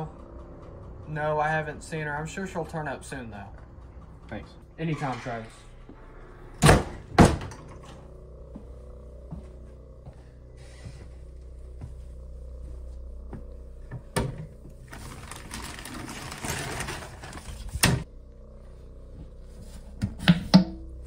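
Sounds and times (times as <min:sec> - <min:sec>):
low steady hum: 0:00.0 - 0:21.0
door shutting with thunks: 0:06.6 - 0:08.0
rummaging inside cabinet: 0:13.9 - 0:18.1.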